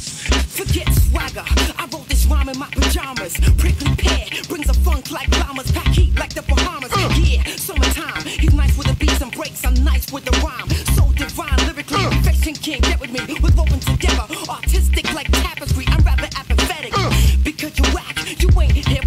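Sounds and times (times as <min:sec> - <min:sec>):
rapping over a beat: 0:00.0 - 0:19.0
heavy bass kick: 0:00.3 - 0:02.4, 0:03.4 - 0:07.5, 0:08.4 - 0:09.2, 0:10.7 - 0:17.5, 0:18.5 - 0:19.0.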